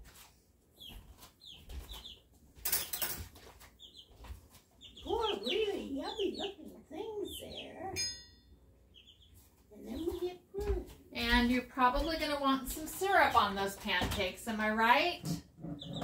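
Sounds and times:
pet birds chirping: 0:00.6 - 0:08.2, 0:08.8 - 0:14.2, 0:14.8 - 0:16.0.

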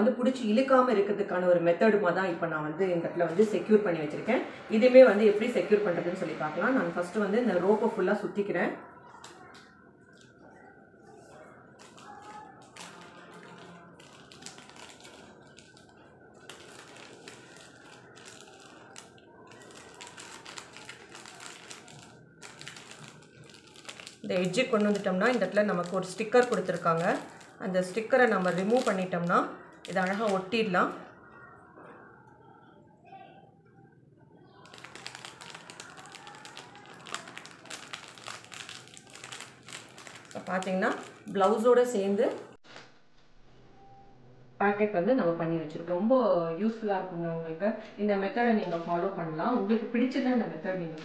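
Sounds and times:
plastic packet crinkling: 0:09.2 - 0:30.7, 0:34.6 - 0:42.6.

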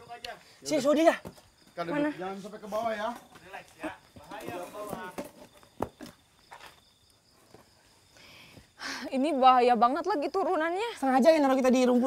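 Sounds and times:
high insect trill: 0:00.0 - 0:12.0.

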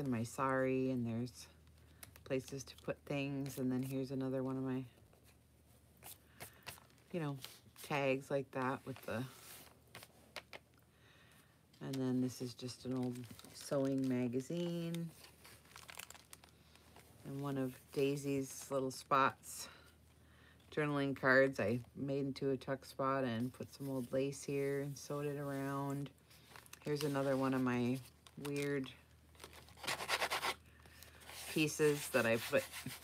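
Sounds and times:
stiff paper rustling and crinkling: 0:12.9 - 0:17.8.

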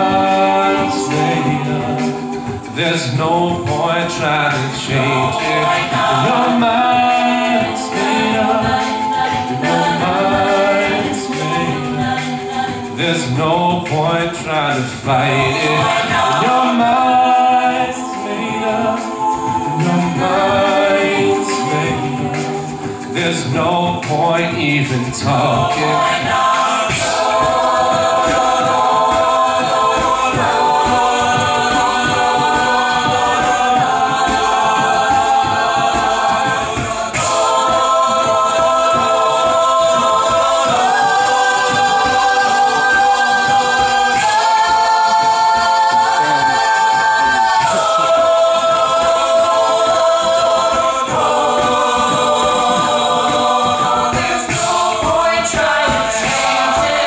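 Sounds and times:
a cappella group singing chords: 0:00.0 - 0:57.0
low rhythmic pulse: 0:00.0 - 0:57.0.

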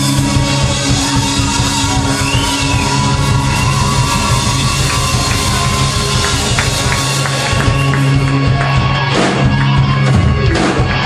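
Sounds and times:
drum hits: 0:00.0 - 0:11.0
live rock band playing: 0:00.0 - 0:11.0.

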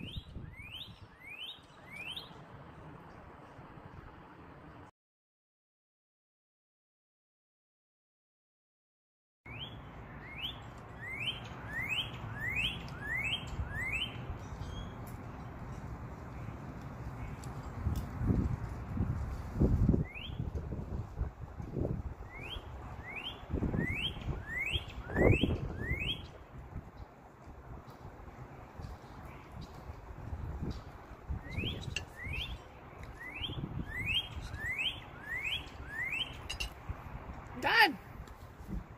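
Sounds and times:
cardinal whistling song: 0:00.0 - 0:02.4, 0:09.5 - 0:15.0, 0:19.9 - 0:20.5, 0:22.2 - 0:26.4, 0:31.3 - 0:36.7.

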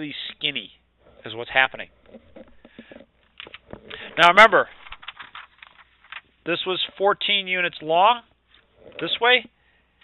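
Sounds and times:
small clicks and rustles: 0:02.0 - 0:04.1, 0:04.7 - 0:06.3.

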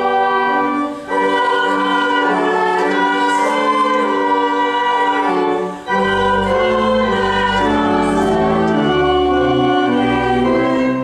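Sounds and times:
church choir singing: 0:00.0 - 0:11.0
organ: 0:00.0 - 0:11.0.

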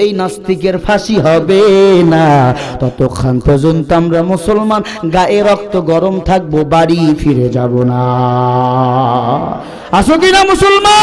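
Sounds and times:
preacher speaking into microphone: 0:00.0 - 0:11.0.

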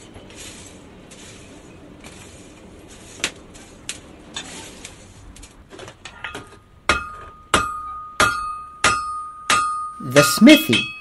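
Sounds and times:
hammer striking anvil: 0:06.3 - 0:11.0.

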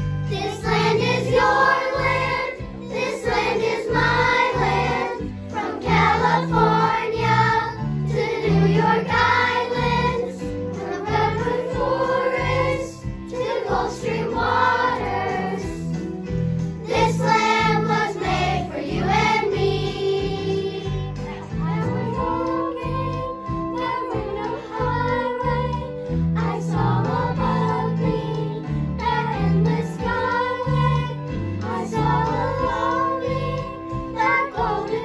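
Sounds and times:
children's choir singing: 0:00.0 - 0:16.1, 0:16.8 - 0:35.0
instrumental backing track: 0:00.0 - 0:35.0.

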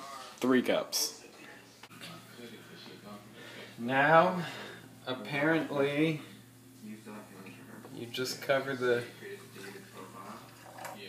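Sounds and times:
hot water pouring: 0:09.5 - 0:11.0.

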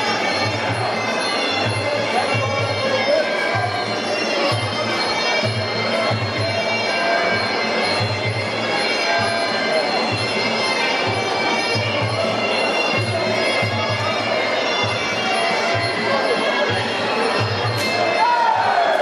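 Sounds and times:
voices in a hall: 0:00.0 - 0:19.0
drum beats: 0:07.5 - 0:19.0.

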